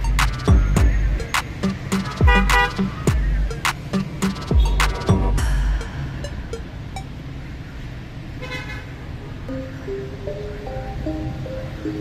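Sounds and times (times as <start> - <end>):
street traffic rumble: 0.0 - 12.0
car horn toot: 2.2 - 2.9, 4.5 - 5.1, 8.4 - 9.0.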